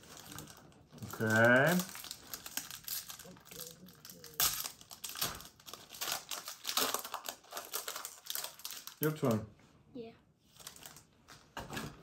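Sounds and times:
foil wrapper crinkling: 0.0 - 9.3, 10.6 - 11.4.

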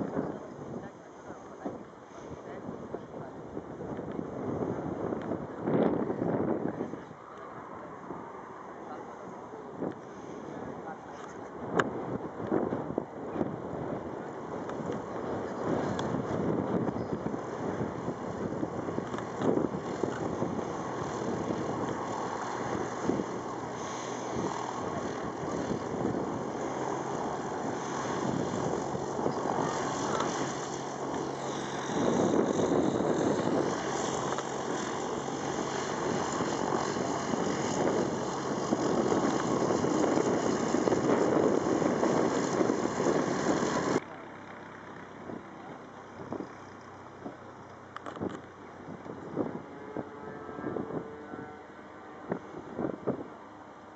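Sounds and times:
propeller plane engine drone: 0.0 - 53.9
rough noisy rush: 15.0 - 44.0.

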